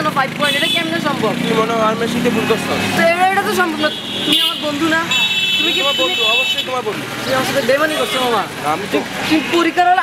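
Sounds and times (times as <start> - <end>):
man talking: 0.0 - 4.9, 5.6 - 10.0
vehicle horn toot: 3.8 - 6.8.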